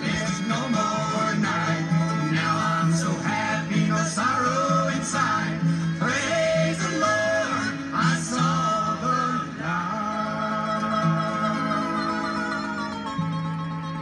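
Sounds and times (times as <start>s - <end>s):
person singing: 0.0s - 12.7s
acoustic guitar: 0.0s - 14.0s.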